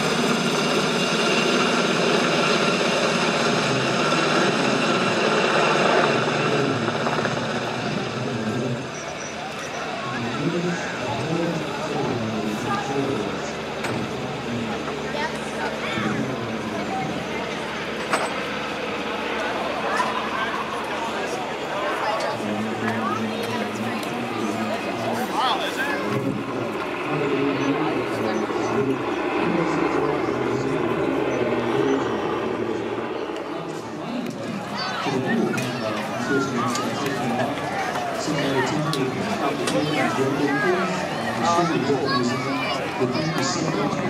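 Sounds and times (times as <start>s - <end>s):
helicopter passing overhead: 0.0s - 44.0s
people talking: 1.6s - 44.0s.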